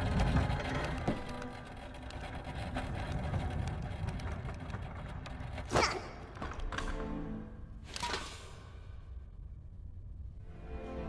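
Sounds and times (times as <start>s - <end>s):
cart wheels rattling: 0.0s - 7.0s.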